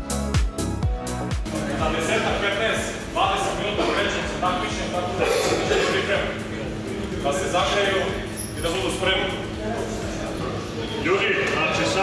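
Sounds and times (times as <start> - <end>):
men talking: 1.5 - 12.0.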